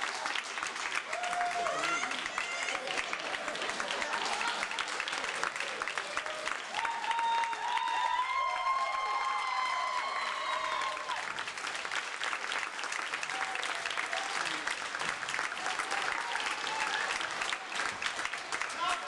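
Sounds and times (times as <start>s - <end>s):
audience clapping: 0.0s - 19.0s
long high cheer: 0.0s - 19.0s.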